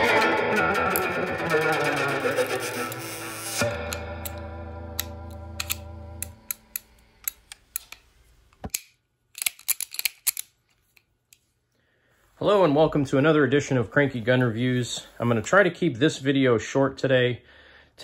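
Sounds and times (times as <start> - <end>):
distorted electric guitar music: 0.0 - 6.8
revolver metallic clicks: 3.7 - 11.4.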